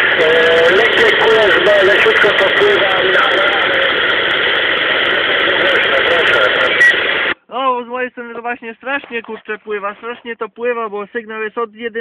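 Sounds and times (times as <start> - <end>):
man talking: 0.0 - 4.0, 5.4 - 12.0
radio voice in heavy static: 0.0 - 12.0.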